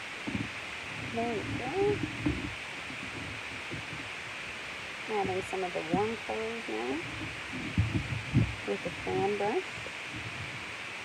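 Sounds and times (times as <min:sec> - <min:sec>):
faint soft rustles: 0:00.0 - 0:11.0
steady background hiss: 0:00.0 - 0:11.0.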